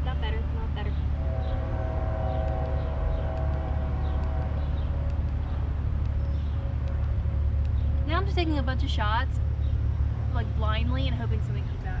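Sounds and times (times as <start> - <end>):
long horn blast: 0.0 - 5.8
low rumble of traffic: 0.0 - 12.0
wind: 0.0 - 12.0.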